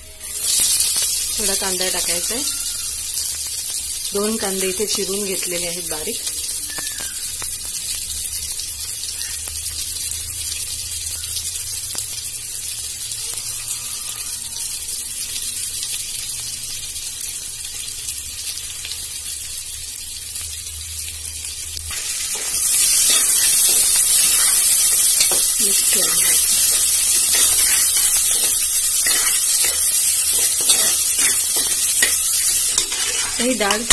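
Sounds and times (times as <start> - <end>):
food sizzling in hot fat: 0.0 - 33.9
spoon stirring mixture: 23.1 - 33.9.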